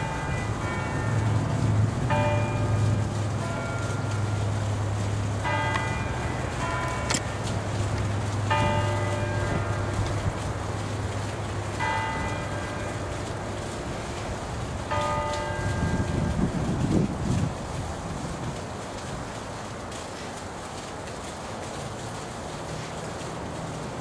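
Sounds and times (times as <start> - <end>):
church bell strokes: 5.4 - 7.4.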